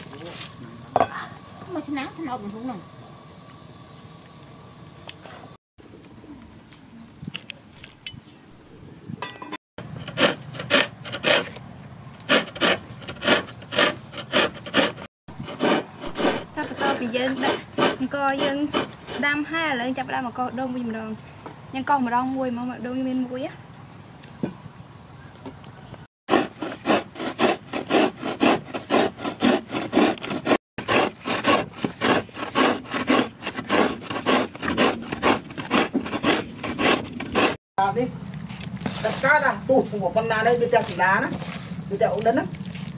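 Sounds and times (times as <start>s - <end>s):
coconut scraping on hand grater: 9.8s - 11.6s, 12.2s - 19.5s, 26.3s - 37.6s.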